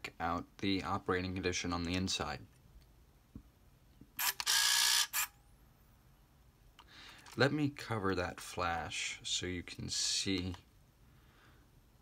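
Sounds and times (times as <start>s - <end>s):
camera motor winder: 4.2s - 5.3s
camera shutter click: 4.2s - 5.3s.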